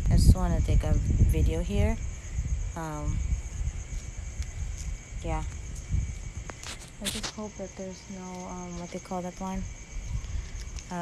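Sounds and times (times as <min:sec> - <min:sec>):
insects chirring: 0:00.0 - 0:11.0
wind rumble on microphone: 0:00.0 - 0:11.0.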